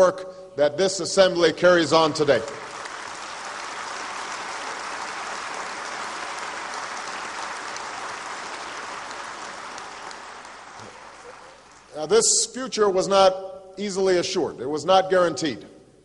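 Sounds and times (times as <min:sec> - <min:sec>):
many hands clapping: 0:02.3 - 0:12.1.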